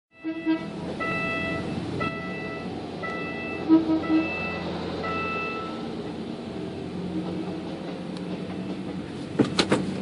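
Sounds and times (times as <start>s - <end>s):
low-pitched toot: 0.2s - 5.8s
level crossing warning tone pulses: 0.2s - 6.0s.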